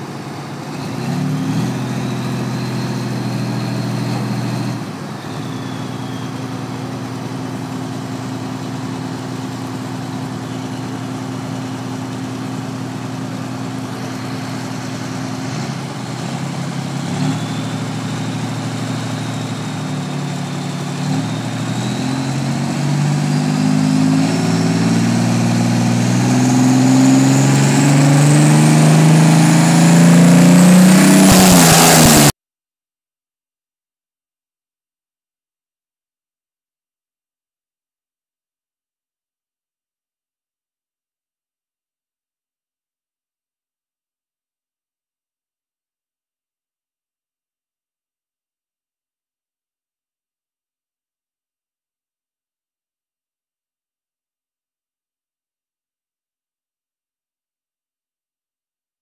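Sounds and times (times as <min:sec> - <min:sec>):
diesel tractor engine revving: 0:00.0 - 0:32.3.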